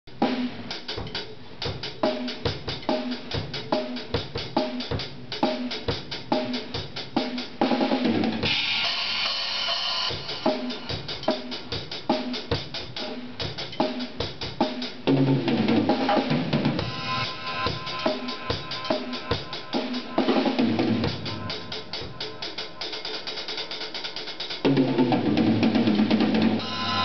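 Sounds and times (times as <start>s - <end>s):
drum fill: 0.1s - 27.0s
drum kit beat: 0.1s - 27.0s
cymbal crash ringing: 8.5s - 11.1s, 16.8s - 24.0s, 26.6s - 27.0s.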